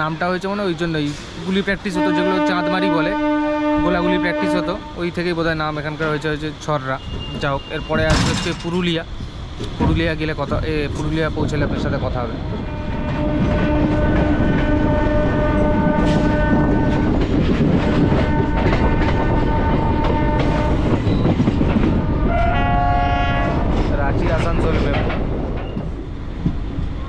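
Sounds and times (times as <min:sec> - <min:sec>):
train running and rail clatter: 0:00.0 - 0:27.0
train horn: 0:01.9 - 0:05.2, 0:12.6 - 0:21.0, 0:22.0 - 0:23.7.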